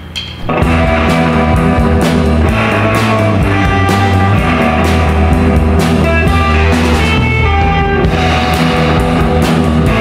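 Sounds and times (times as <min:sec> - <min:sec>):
drum kit hits: 0:00.0 - 0:10.0
bass guitar: 0:00.4 - 0:10.0
electric guitars: 0:00.5 - 0:10.0.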